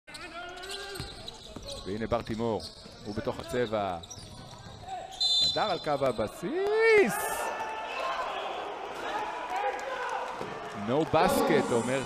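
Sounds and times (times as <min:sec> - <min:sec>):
commentator talking: 0:10.8 - 0:12.0.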